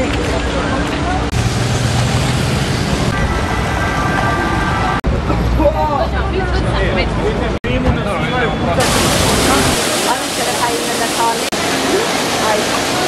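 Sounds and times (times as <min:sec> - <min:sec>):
passers-by talking: 0:00.0 - 0:01.4, 0:03.0 - 0:13.0
road traffic: 0:00.0 - 0:13.0.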